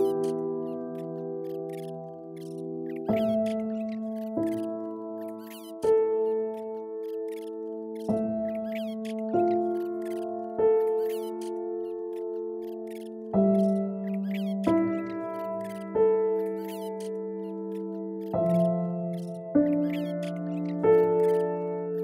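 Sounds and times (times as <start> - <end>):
soft piano chords: 0.0 - 22.0.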